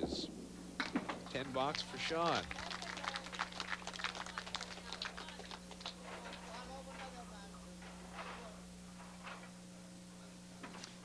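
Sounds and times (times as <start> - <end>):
crowd clapping: 0.8 - 6.1.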